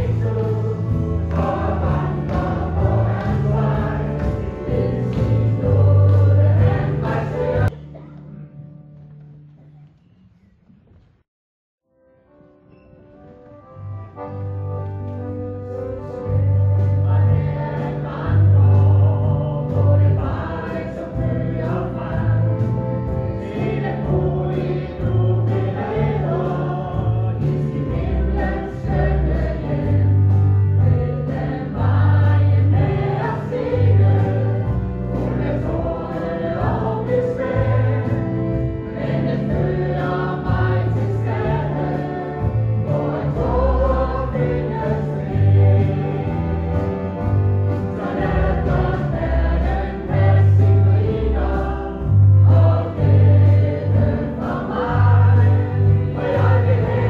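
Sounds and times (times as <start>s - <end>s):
choir singing a hymn: 0.0s - 7.8s, 15.4s - 57.0s
bass line in held notes: 0.0s - 9.3s, 13.6s - 57.0s
instrumental accompaniment: 0.0s - 10.2s, 12.1s - 57.0s.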